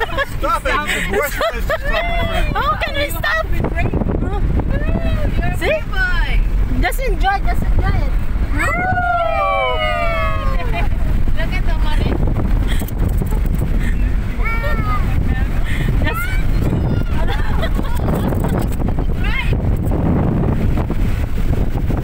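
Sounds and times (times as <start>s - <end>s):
passengers crying out: 0.0s - 5.5s, 8.5s - 11.0s
vehicle engine and tyres rumbling: 0.0s - 22.0s.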